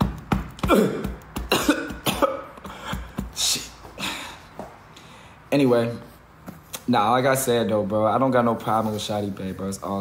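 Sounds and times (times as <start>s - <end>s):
man coughing: 0.6s - 4.6s.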